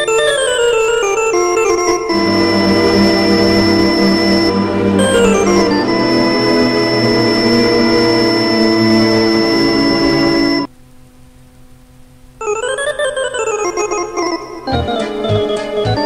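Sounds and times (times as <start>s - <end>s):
electronic organ dance tune: 0.0s - 10.7s, 12.4s - 16.0s.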